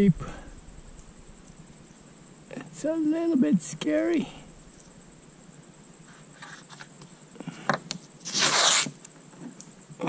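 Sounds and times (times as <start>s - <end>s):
masking tape ripping off roll: 8.2s - 8.9s.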